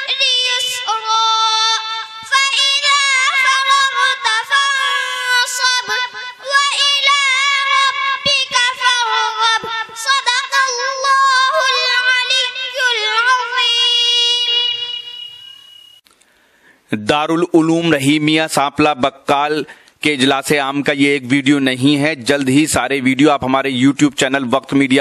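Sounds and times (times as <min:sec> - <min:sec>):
girl chanting recitation: 0:00.0 - 0:15.2.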